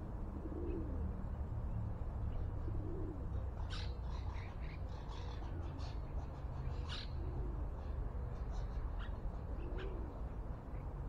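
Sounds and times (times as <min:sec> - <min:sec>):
faint low coos: 0:00.2 - 0:01.2, 0:02.6 - 0:03.4.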